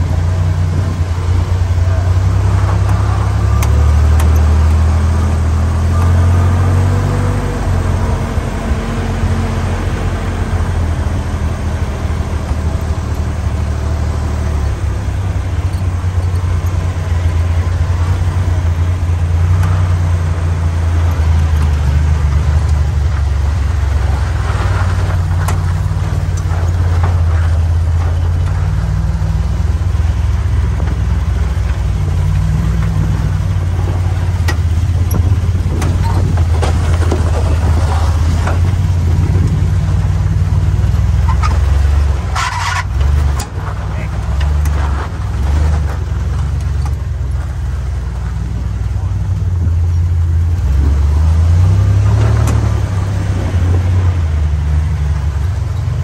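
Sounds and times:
car engine running: 0.0 - 56.0
knocks and rattles: 15.0 - 29.4, 30.1 - 47.6.

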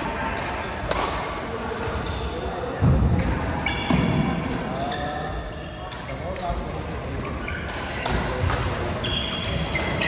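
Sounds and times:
murmur of voices: 0.0 - 10.0
sneakers squeaking on floor: 1.9 - 2.8, 3.6 - 6.5, 7.2 - 10.0.

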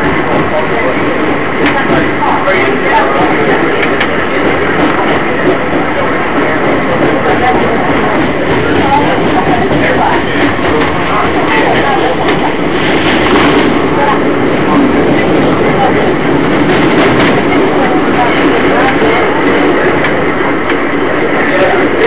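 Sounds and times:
subway wheels on rail: 0.0 - 22.0.

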